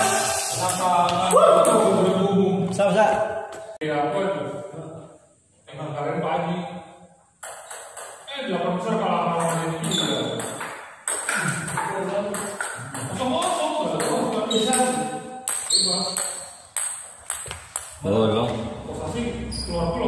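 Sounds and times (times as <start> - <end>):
people talking: 0.0 - 3.2, 8.3 - 10.6, 11.3 - 16.3, 18.0 - 20.0.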